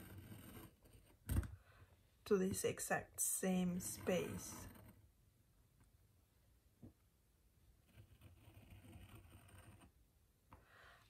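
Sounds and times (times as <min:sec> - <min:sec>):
craft knife scoring paper: 0:00.0 - 0:01.2, 0:03.7 - 0:05.0.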